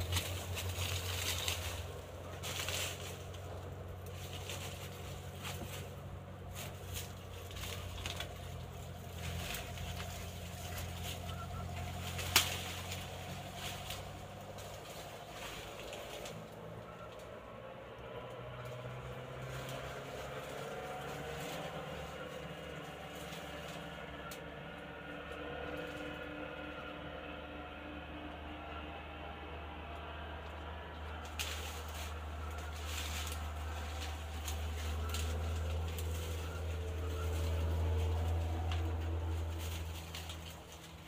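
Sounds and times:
small clicks and rustles: 0.0 - 24.5, 30.4 - 41.0
steady low hum: 0.0 - 41.0.

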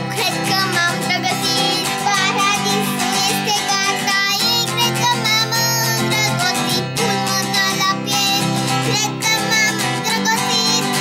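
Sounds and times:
child singing long notes: 0.0 - 11.0
instrumental accompaniment: 0.0 - 11.0.

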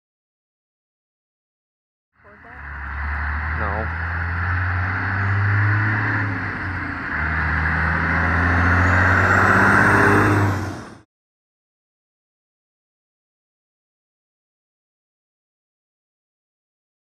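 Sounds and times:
large vehicle engine droning: 2.2 - 11.1.

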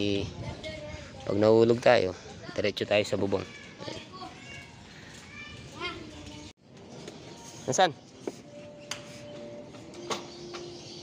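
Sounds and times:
neighbourhood background noise: 0.0 - 11.0.

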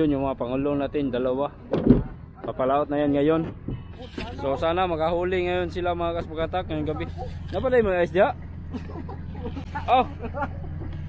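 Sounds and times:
engine idling hum: 0.0 - 11.0.

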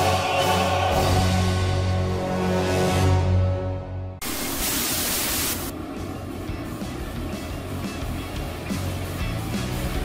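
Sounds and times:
rough noisy music with low pulses: 0.0 - 10.0
static-like hiss burst: 4.2 - 5.8.

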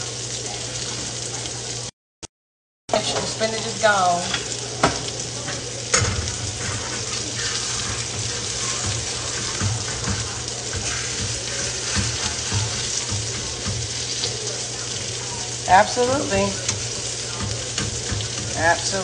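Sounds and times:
sausages sizzling in a skillet: 0.0 - 1.9, 2.9 - 19.0
metal tongs clicking on pan: 16.6 - 19.0.

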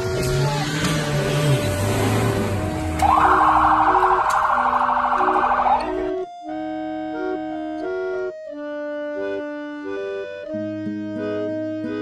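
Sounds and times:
organ music: 1.4 - 12.0
siren warbling wail: 3.0 - 6.2.

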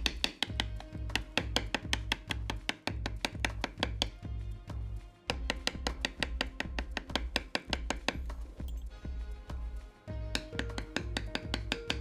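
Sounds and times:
mallet striking leather stamping tool: 0.0 - 8.9, 10.3 - 12.0.

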